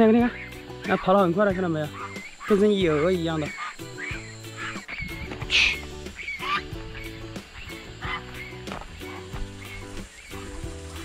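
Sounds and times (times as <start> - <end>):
background music with held notes: 0.0 - 11.0
geese honking: 0.0 - 11.0.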